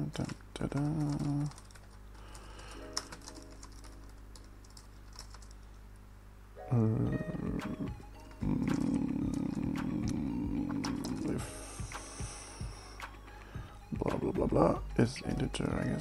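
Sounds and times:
typing on computer keyboard: 0:00.0 - 0:05.6, 0:08.4 - 0:10.2
background music: 0:02.4 - 0:04.6, 0:06.6 - 0:16.0.

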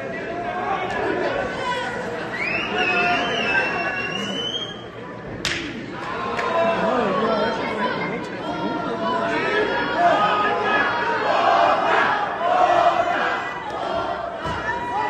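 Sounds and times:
crowd shouting and chattering: 0:00.0 - 0:15.0.

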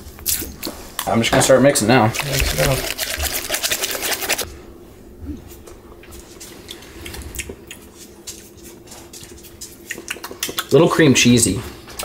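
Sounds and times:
utensil stirring thick dip in bowl: 0:01.7 - 0:04.5.

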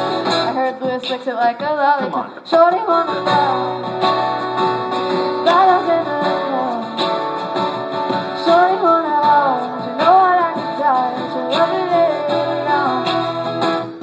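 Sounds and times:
person singing: 0:00.0 - 0:07.4, 0:08.1 - 0:14.0
acoustic guitars strummed: 0:00.0 - 0:14.0.

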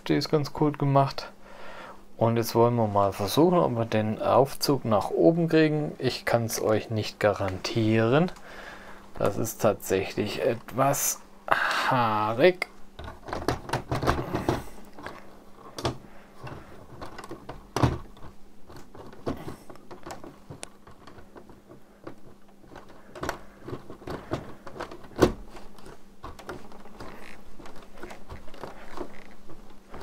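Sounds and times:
plastic gears knocking: 0:13.0 - 0:30.0.

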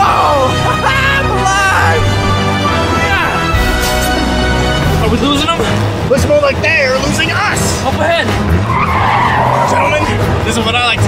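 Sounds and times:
car tyres screeching: 0:02.0 - 0:11.0.

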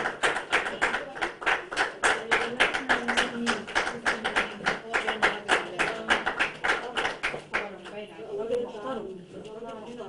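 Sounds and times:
audience clapping in rhythm: 0:00.0 - 0:07.8.

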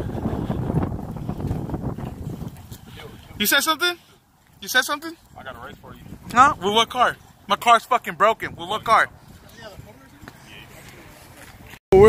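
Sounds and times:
wind buffeting microphone: 0:00.0 - 0:03.5, 0:05.2 - 0:12.0.

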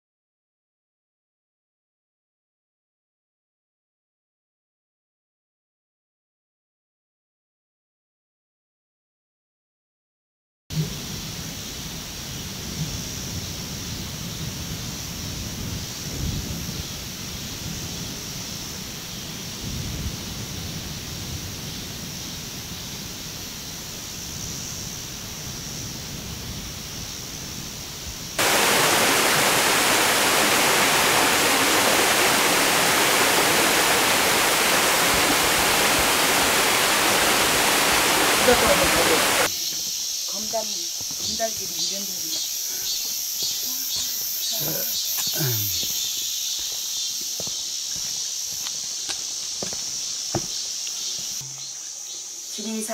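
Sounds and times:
waterfall rushing over rocks: 0:28.4 - 0:39.5.

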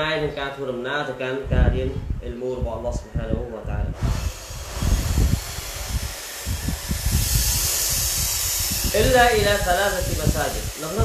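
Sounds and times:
steady hissing noise: 0:00.0 - 0:11.0
low rumbling: 0:01.4 - 0:11.0.

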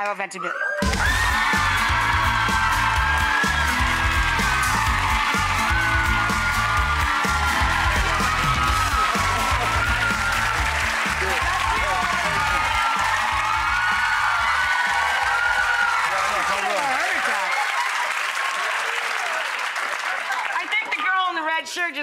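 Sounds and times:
upbeat music with low beat: 0:00.8 - 0:15.1
audience applauding and cheering: 0:00.8 - 0:21.4.

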